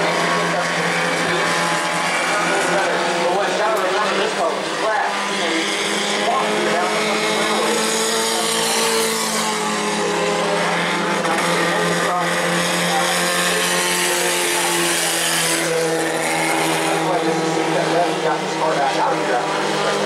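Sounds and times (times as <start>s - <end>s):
racing car engines: 0.0s - 20.0s.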